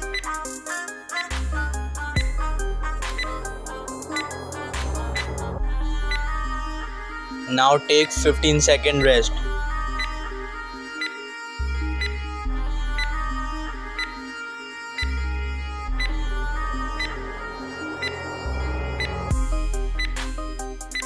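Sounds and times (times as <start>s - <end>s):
music with deep bass and beat: 0.0s - 21.0s
fast high ticking pattern: 1.8s - 6.6s.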